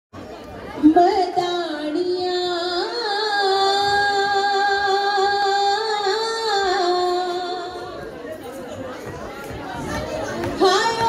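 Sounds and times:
woman singing folk song: 0:00.8 - 0:07.8.

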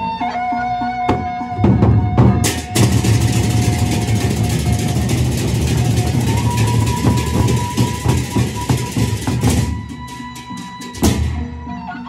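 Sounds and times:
barrel drums beaten: 0:01.1 - 0:11.9
hand cymbals clashing: 0:02.4 - 0:11.7
held melody note: 0:02.6 - 0:12.0.

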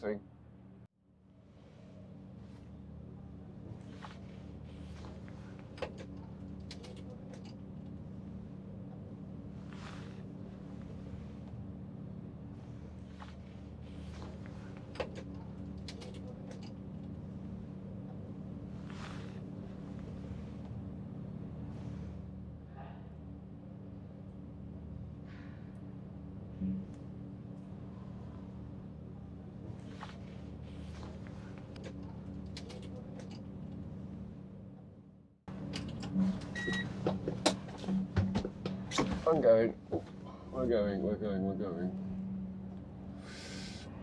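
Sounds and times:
low machinery hum: 0:00.0 - 0:44.0.

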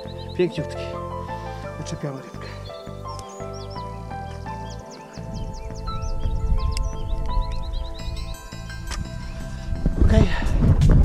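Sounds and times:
high chirps: 0:00.0 - 0:11.0
low rumbling noise: 0:00.0 - 0:11.0
music with pulsing bass: 0:00.0 - 0:11.0.

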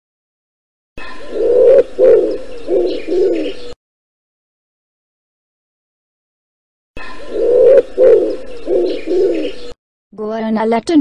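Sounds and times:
pigeon cooing: 0:01.0 - 0:03.8, 0:07.2 - 0:09.8.

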